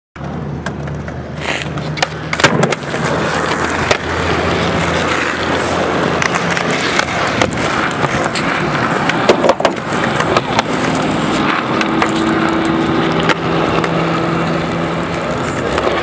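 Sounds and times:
skateboard clacking: 0:00.2 - 0:16.0
skateboard wheels rolling on concrete: 0:00.2 - 0:16.0.

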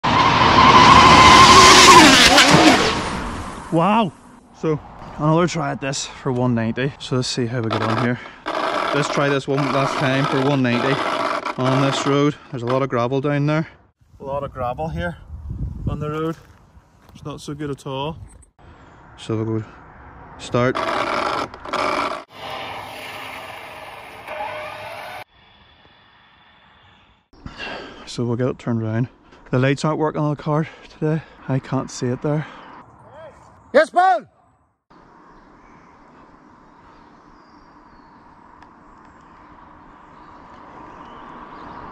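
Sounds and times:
tyres roaring on tarmac: 0:00.0 - 0:13.1, 0:18.6 - 0:25.3, 0:34.9 - 0:41.9
rc car motor whine: 0:07.7 - 0:12.2, 0:20.7 - 0:27.0.

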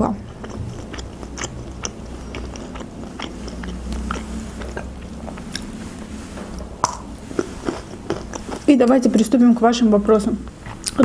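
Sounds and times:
chewing with wet mouth clicks: 0:00.3 - 0:09.3, 0:10.8 - 0:11.0.

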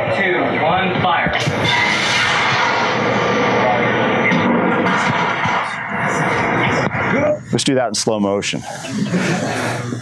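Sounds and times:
rocket launching with rushing noise: 0:01.4 - 0:06.7.

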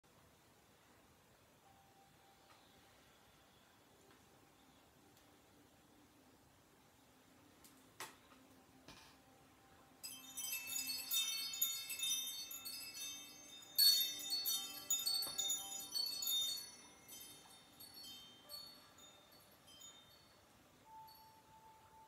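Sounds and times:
wind chimes ringing: 0:10.0 - 0:22.0.

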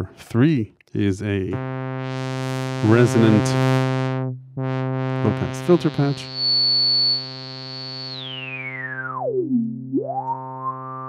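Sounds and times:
synth note with sweeping resonant filter: 0:01.6 - 0:11.0.

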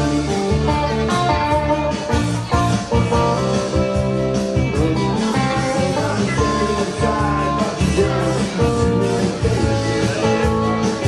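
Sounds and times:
bass line: 0:00.0 - 0:11.0
electric guitar: 0:00.0 - 0:11.0.

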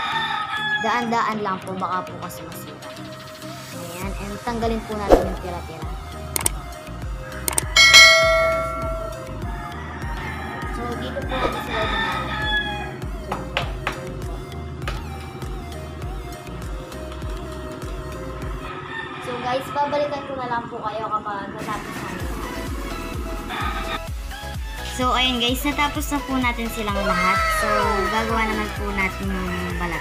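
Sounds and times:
rooster crowing: 0:00.0 - 0:00.9, 0:07.2 - 0:13.1, 0:18.7 - 0:20.4, 0:23.4 - 0:24.1, 0:26.9 - 0:28.7, 0:29.3 - 0:30.0
background music with beat: 0:04.7 - 0:18.7, 0:22.0 - 0:26.6.

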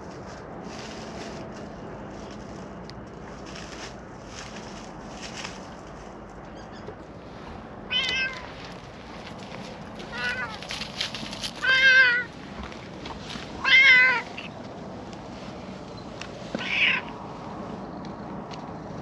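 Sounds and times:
cat meowing: 0:07.9 - 0:08.6, 0:10.0 - 0:10.7, 0:11.6 - 0:12.3, 0:13.6 - 0:14.5, 0:16.6 - 0:17.1.

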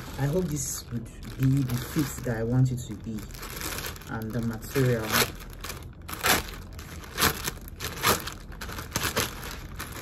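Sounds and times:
plastic bag crinkling: 0:00.0 - 0:10.0.

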